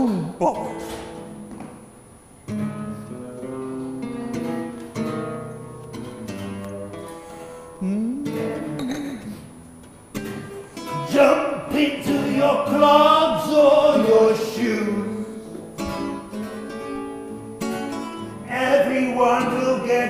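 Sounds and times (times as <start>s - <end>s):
solo acoustic guitar: 0.0s - 20.0s.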